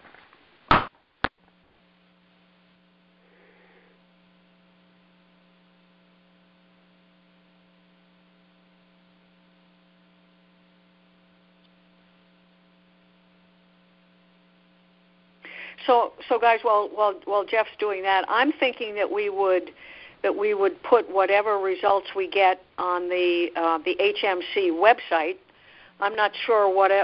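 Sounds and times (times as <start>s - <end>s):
electrical mains hum: 0.0s - 27.0s.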